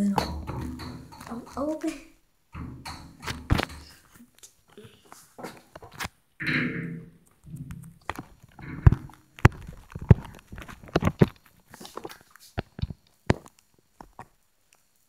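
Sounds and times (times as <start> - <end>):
sharp knocks and taps: 0.0 - 4.2, 5.4 - 11.4
child's voice: 1.3 - 2.2.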